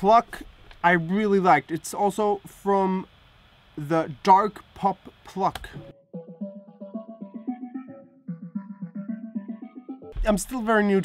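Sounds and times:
synth pluck notes: 5.8 - 10.3.

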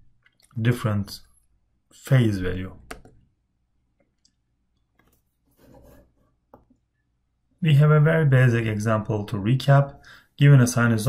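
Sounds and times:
computer mouse sliding on desk: 5.1 - 6.3.

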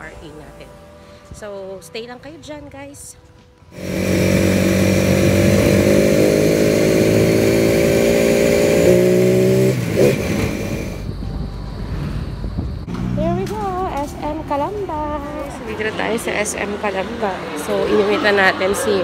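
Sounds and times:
rumble of traffic: 0.0 - 19.0
vehicle engine running: 3.8 - 18.7.

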